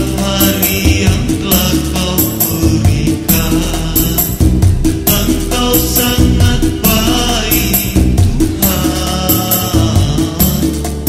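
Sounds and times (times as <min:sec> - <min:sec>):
gospel song with bass and percussion: 0:00.0 - 0:11.0.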